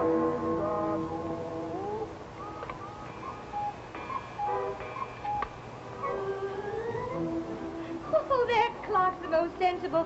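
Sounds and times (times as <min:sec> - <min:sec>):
cuckoo clock calling: 0:00.1 - 0:07.3.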